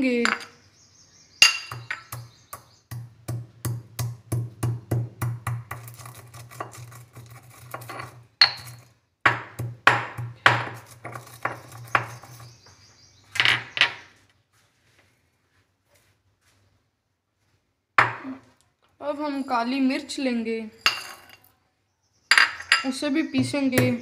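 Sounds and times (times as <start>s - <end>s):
stone pestle pounding seeds in mortar: 1.6s - 12.7s, 23.4s - 24.0s.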